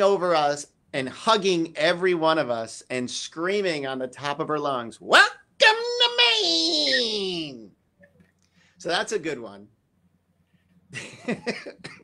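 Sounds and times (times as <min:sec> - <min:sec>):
person laughing: 0:10.9 - 0:12.0.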